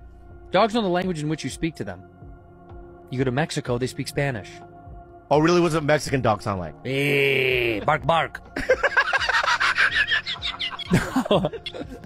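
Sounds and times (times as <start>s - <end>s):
person laughing hard: 7.0s - 7.9s, 8.6s - 12.0s.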